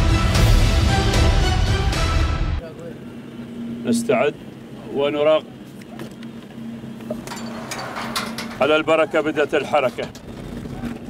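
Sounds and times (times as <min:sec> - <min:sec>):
vehicle engines idling: 0:02.6 - 0:11.0.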